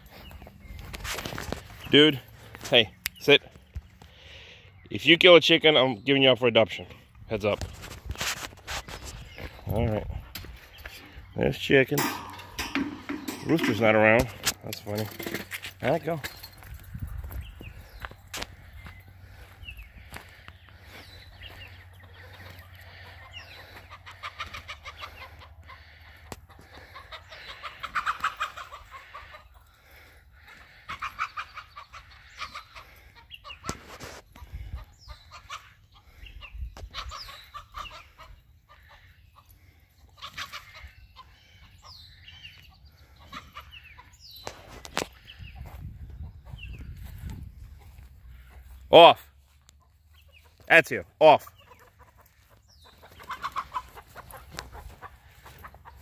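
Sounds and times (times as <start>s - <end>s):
chickens clucking: 6.6s - 56.0s.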